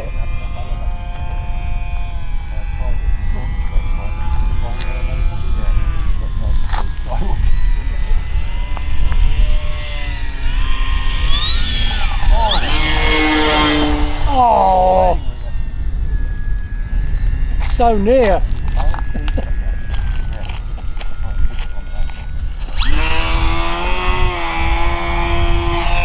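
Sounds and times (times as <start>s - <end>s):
model plane motors whining: 0.0s - 26.0s
wind rumble on microphone: 0.0s - 26.0s.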